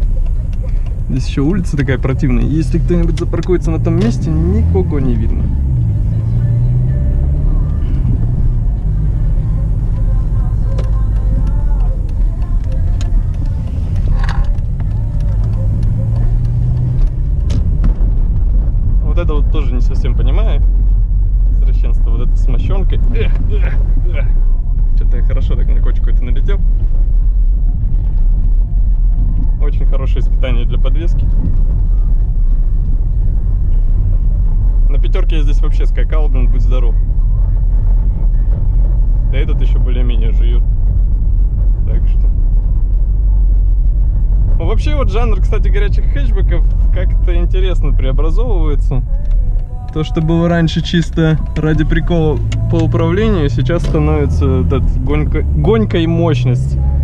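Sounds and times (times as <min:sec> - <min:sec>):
car engine hum: 0:00.0 - 0:57.0
road noise drone: 0:00.0 - 0:57.0
tyres rumbling on cobblestones: 0:00.0 - 0:57.0.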